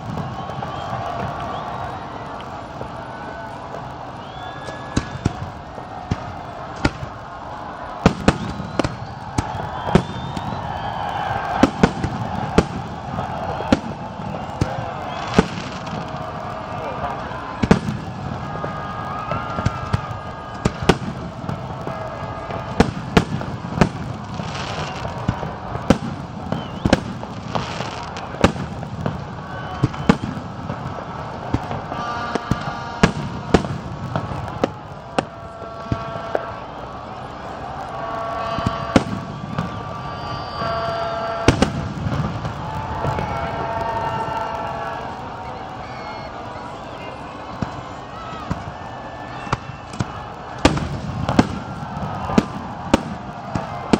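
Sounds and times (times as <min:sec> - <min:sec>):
fireworks bursting with sharp bangs: 0:00.0 - 0:46.3, 0:47.0 - 0:53.9
people's voices: 0:00.0 - 0:53.9.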